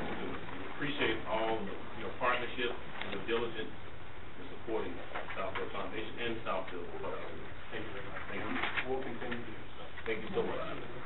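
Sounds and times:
muffled voices talking: 0.0 - 3.8, 4.4 - 11.0.

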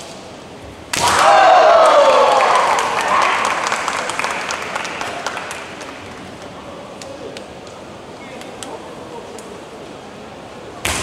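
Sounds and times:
bamboo sword strike crack: 0.9 - 1.3
people shouting: 1.0 - 3.4
cheering and clapping: 1.0 - 7.1.

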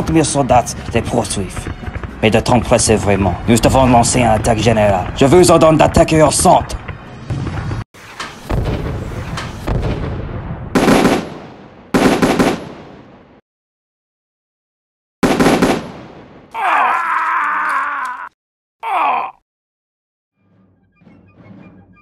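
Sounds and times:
gunshots with echo: 8.5 - 13.3, 15.2 - 16.5
long pitched cry: 16.6 - 19.4.

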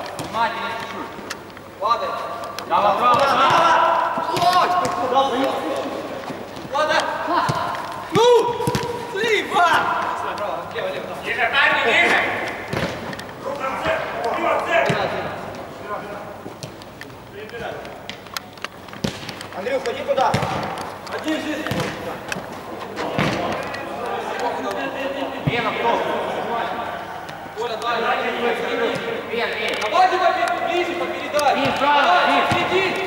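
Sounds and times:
players shouting: 1.9 - 16.4, 19.5 - 33.0
football being kicked: 8.5 - 9.1, 20.2 - 20.6, 21.7 - 22.0.

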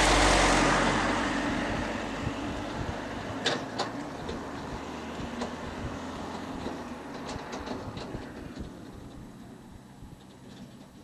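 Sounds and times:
train rumble: 0.0 - 11.0
wheels clicking on track: 0.0 - 11.0.

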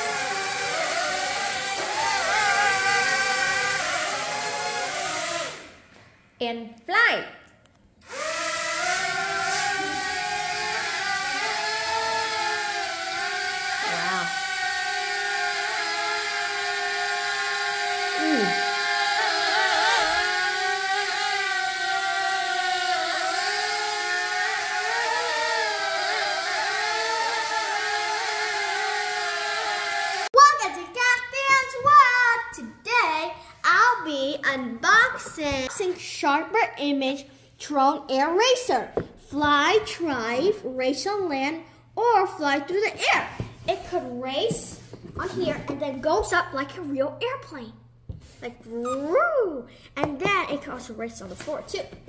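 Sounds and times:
toy drone propellers whining: 0.0 - 5.8, 8.0 - 30.4
child speaking: 6.4 - 7.4, 13.8 - 14.4, 18.1 - 18.6, 30.4 - 52.0.

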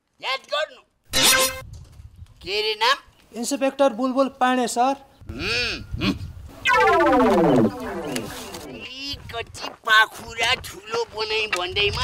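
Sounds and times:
loud descending pitched sound: 6.6 - 8.8.

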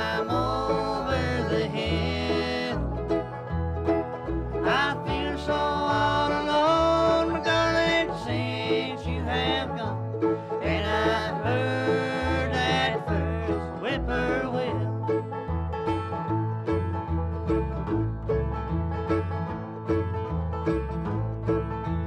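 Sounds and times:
acoustic guitar: 0.0 - 22.0
banjo picked rolls: 0.0 - 22.0
mandolin: 0.0 - 22.0
upright bass: 0.0 - 22.0.

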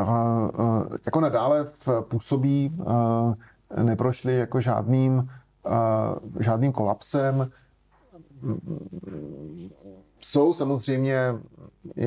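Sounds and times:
man speaking: 0.0 - 7.6, 10.2 - 12.0.

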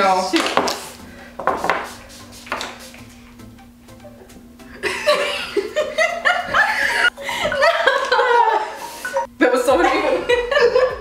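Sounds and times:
women laughing: 4.7 - 11.0.

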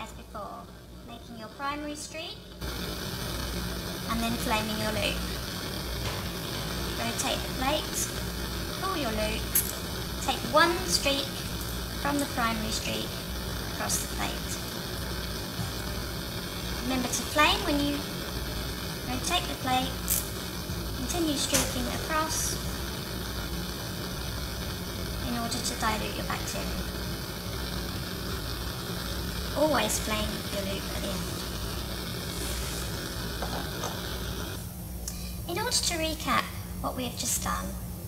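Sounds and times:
woman speaking: 0.0 - 2.4, 4.1 - 5.3, 7.0 - 8.2, 8.8 - 9.6, 10.2 - 11.4, 12.0 - 13.2, 13.8 - 14.6, 16.8 - 18.1, 19.1 - 20.0, 21.0 - 22.6, 25.2 - 26.8, 29.6 - 31.4, 35.5 - 37.8
steady hiss: 0.0 - 38.0
low hum: 2.5 - 35.0.

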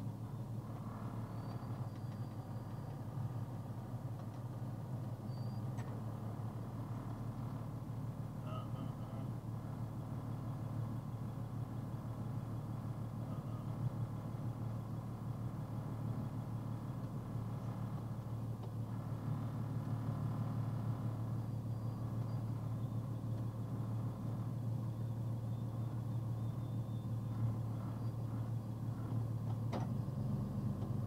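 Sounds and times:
truck engine idling: 0.0 - 31.0.

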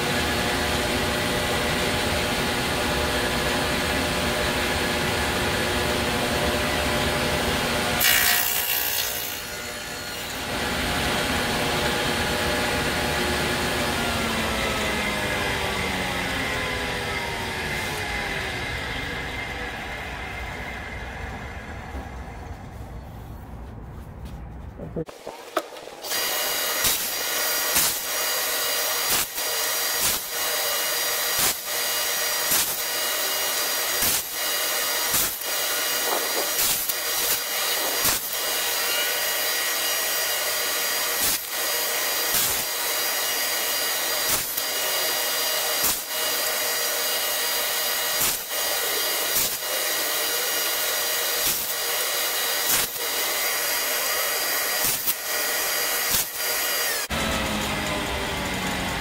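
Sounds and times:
table saw cutting wood: 0.0 - 21.2, 25.1 - 59.0.

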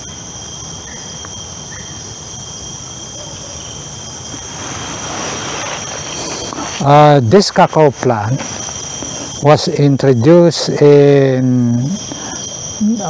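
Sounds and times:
insects droning high-pitched: 0.0 - 13.0.

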